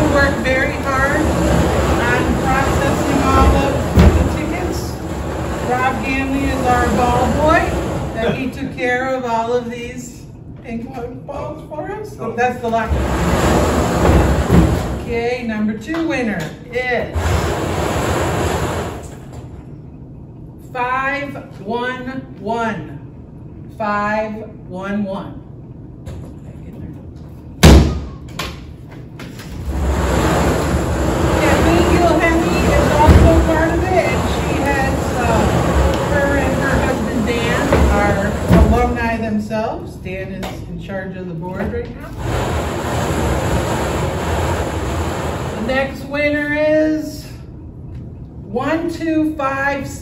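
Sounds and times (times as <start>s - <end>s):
balls rattling in turning drum: 0.0s - 8.0s, 29.6s - 39.0s
low voices: 30.8s - 39.1s.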